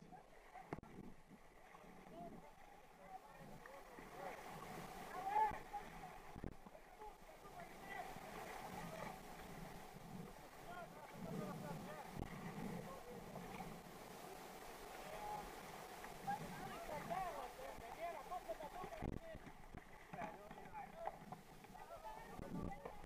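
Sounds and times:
paddle strokes splashing: 0.0 - 23.0
whitewater rushing and gurgling: 0.2 - 23.0.

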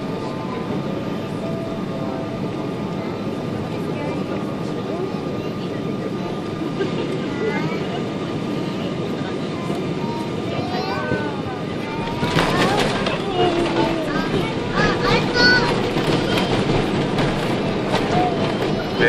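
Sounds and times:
engine and airflow rumble: 0.0 - 19.0.

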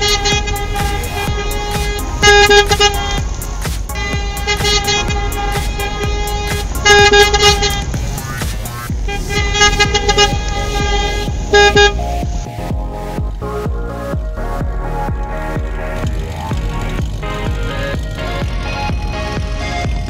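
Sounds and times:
car horns honking: 0.0 - 12.7
background music: 0.0 - 20.0.

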